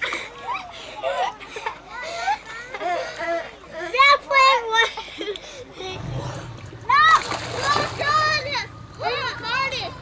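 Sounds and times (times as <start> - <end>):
water splashing: 5.8 - 10.0.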